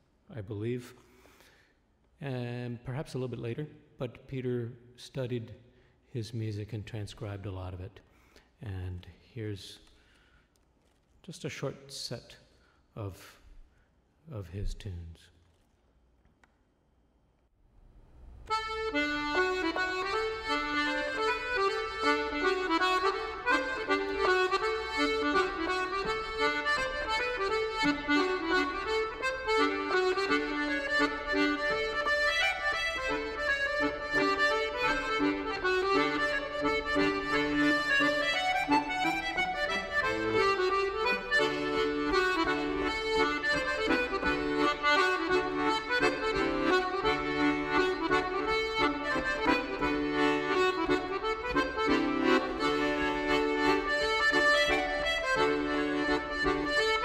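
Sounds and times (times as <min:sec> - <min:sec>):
solo accordion playing reels: 0:18.3 - 0:57.0.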